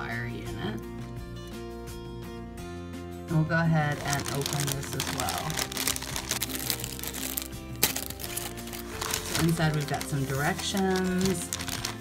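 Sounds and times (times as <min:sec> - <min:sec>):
background music with held notes: 0:00.0 - 0:12.0
plastic bag crinkling: 0:03.9 - 0:12.0.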